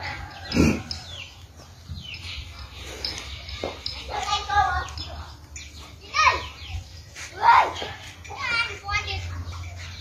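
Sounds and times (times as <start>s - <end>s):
children shouting: 6.0s - 9.4s.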